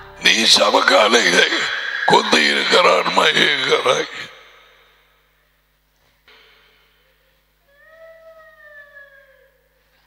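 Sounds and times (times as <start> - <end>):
faint drawn-out cry: 7.7 - 9.8.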